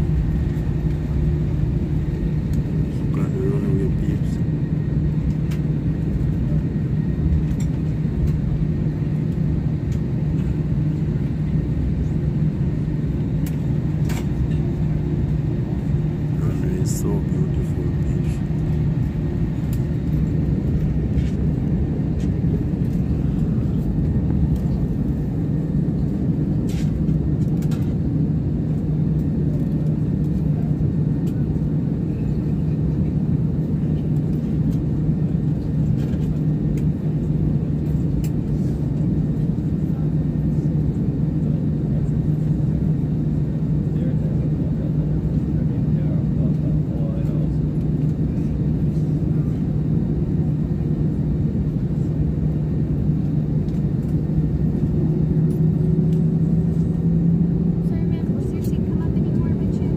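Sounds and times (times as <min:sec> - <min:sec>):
jet engines humming in cabin: 0:00.0 - 0:59.9.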